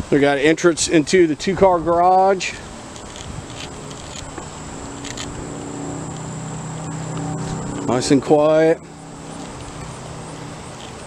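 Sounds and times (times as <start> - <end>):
high-pitched whine: 1.7 - 11.0
low motor hum: 2.6 - 11.0.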